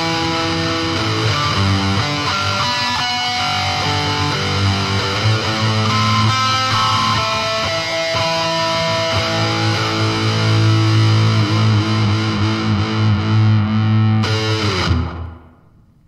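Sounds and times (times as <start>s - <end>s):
distorted electric guitar solo: 0.0s - 15.8s
guitar chord ringing: 0.0s - 15.8s.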